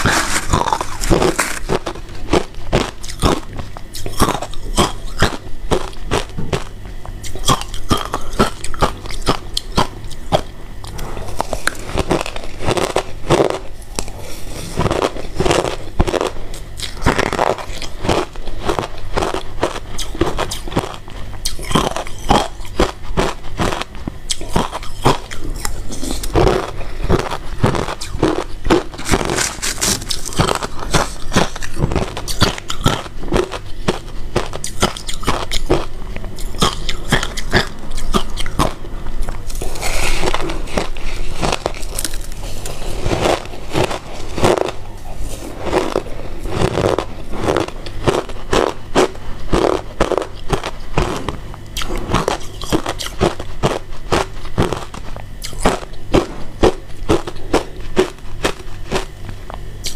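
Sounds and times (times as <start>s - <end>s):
chewing and crunching ice: 0.0s - 59.9s.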